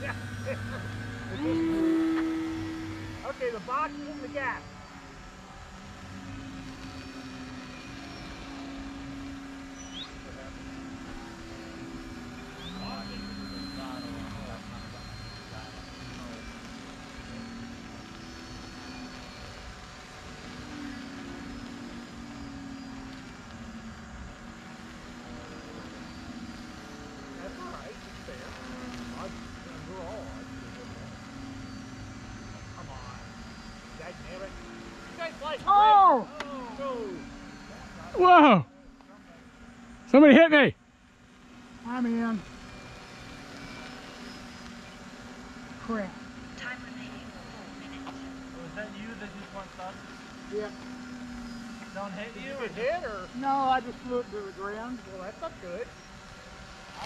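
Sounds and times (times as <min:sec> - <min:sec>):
rc airplanes buzzing: 0:00.0 - 0:57.0.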